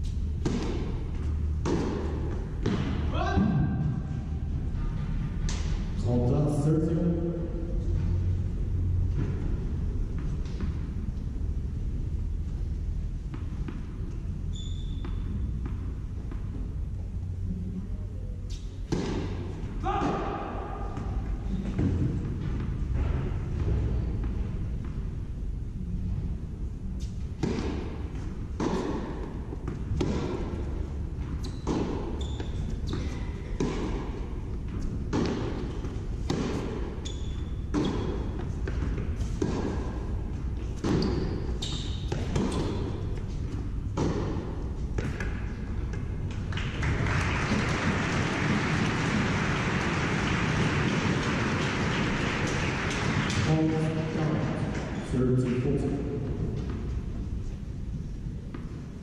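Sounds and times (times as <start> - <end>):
tennis ball bouncing: 0.1 - 3.1, 13.2 - 17.3, 18.5 - 25.2, 27.0 - 49.9, 58.5 - 58.8
tennis racket striking ball: 0.2 - 3.6, 18.5 - 25.0, 27.0 - 46.4.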